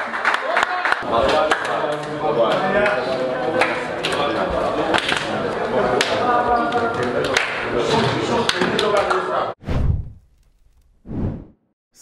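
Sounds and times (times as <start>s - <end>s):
whooshing sweeps: 9.6s - 11.6s.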